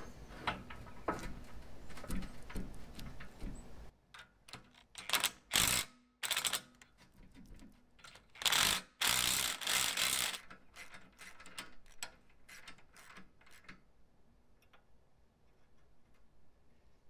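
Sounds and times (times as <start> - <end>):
hand ratchet clicking: 4.5 - 6.7, 8.1 - 13.7.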